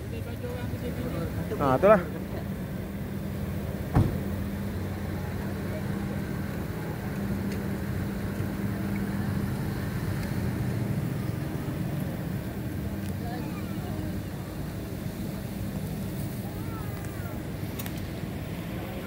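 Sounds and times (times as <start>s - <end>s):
engine humming steadily: 0.0s - 19.0s
sharp knock: 3.9s - 4.2s.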